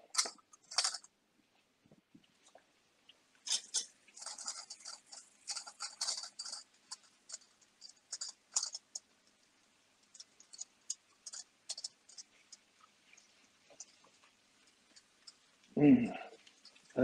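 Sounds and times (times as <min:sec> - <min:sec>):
metal spoon scraping a frying pan: 0:03.5 - 0:09.0.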